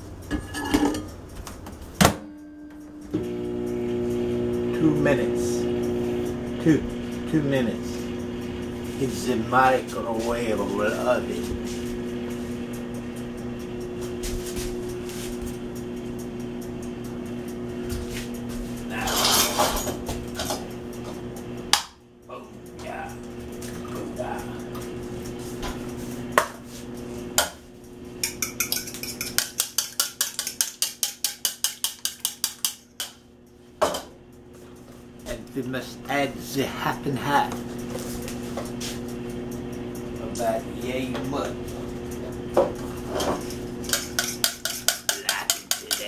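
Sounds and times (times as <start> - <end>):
microwave oven humming: 0.0 - 31.9, 32.5 - 46.0
fork beating against ceramic bowl: 28.2 - 33.2, 43.8 - 46.0.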